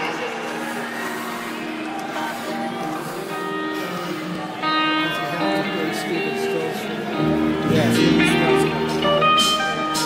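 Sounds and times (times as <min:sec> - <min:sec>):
guitar playing held notes: 0:01.4 - 0:10.0
loud guitar chord: 0:03.7 - 0:10.0.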